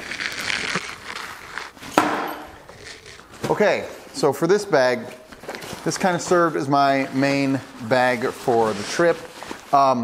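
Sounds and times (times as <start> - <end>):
nylon bag rustling: 0.0 - 4.4, 5.2 - 10.0
sharp knock: 2.0 - 2.5.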